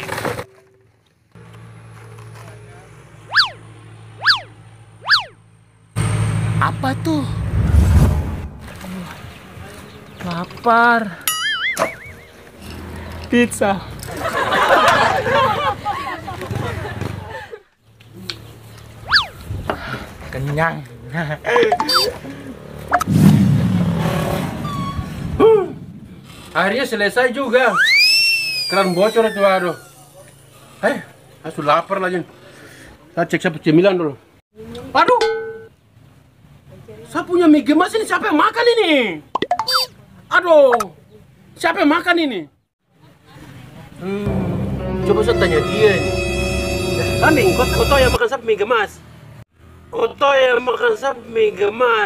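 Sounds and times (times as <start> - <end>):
comic sliding tone effect: 4.2 - 5.4, 44.2 - 48.2
steady rumbling noise: 5.6 - 9.6.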